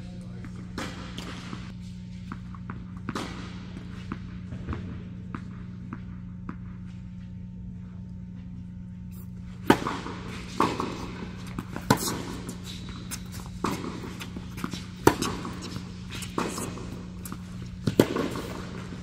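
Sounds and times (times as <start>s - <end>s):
ball bouncing on hard court: 0.1s - 7.0s, 9.6s - 19.0s
tennis ball struck by rackets: 0.7s - 1.7s, 2.3s - 6.6s, 9.6s - 19.0s.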